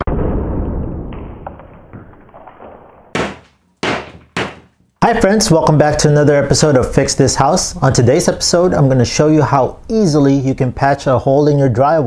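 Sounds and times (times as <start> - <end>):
hammer smashing drywall: 0.0 - 4.8
sharp thuds: 3.1 - 4.8.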